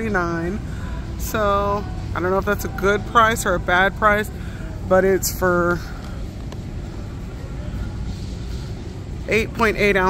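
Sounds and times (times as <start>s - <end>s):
supermarket background rumble: 0.0s - 10.0s.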